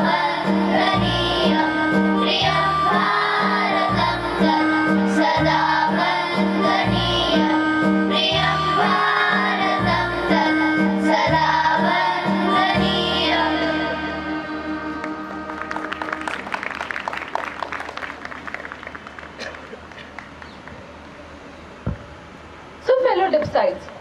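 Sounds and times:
children's choir singing: 0.0s - 16.5s
people clapping: 15.0s - 20.9s.

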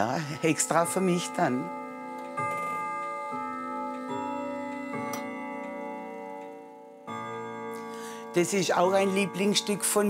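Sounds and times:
clock chiming a melody: 0.0s - 10.0s.

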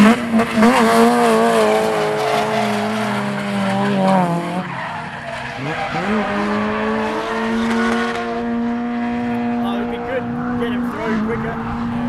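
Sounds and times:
car engine at steady revs: 5.6s - 12.0s.

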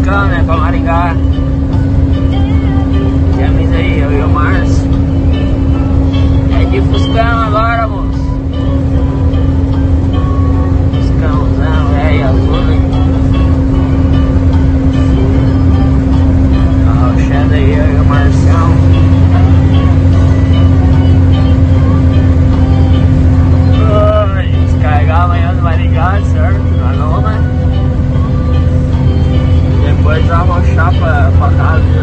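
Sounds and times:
music with singing: 0.0s - 32.0s
truck engine droning: 0.0s - 32.0s.

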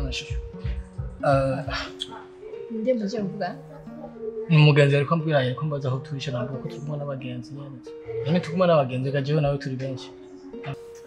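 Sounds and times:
music with held notes: 0.0s - 11.0s.

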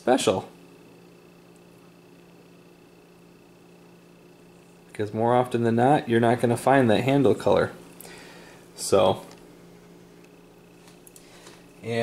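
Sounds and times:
low hum with held tones: 0.0s - 12.0s.

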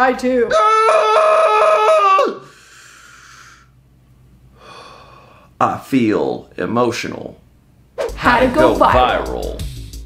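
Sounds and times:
man wailing in falsetto fake crying: 0.5s - 2.4s.

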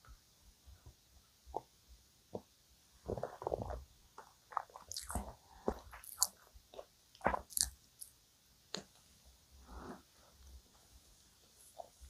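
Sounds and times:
wet chewing mouth sounds: 3.1s - 7.8s.

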